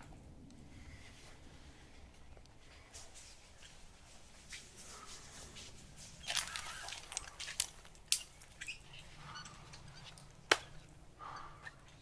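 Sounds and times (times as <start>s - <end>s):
woodland ambience: 0.0s - 12.0s.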